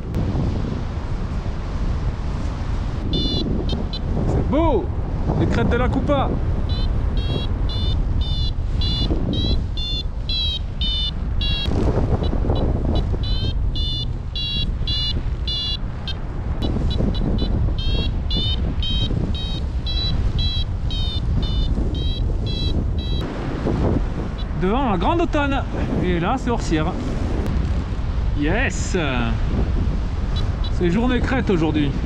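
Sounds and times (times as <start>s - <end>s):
wind on microphone: 0.0s - 32.0s
variometer beeping short high tones: 3.1s - 4.0s, 6.7s - 11.7s, 13.2s - 23.2s.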